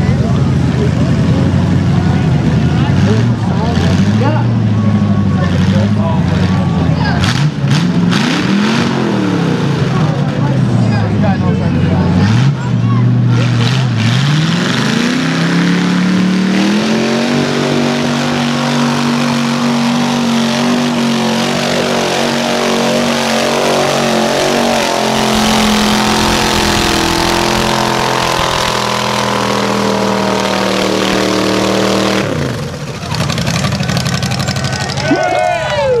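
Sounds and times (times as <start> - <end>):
engine revving hard: 1.3 - 35.0.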